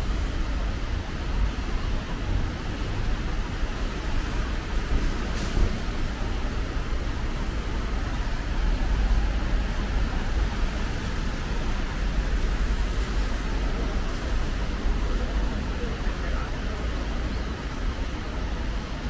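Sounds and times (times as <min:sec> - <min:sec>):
low traffic rumble: 0:00.0 - 0:19.0
tyres on wet road: 0:00.0 - 0:19.0.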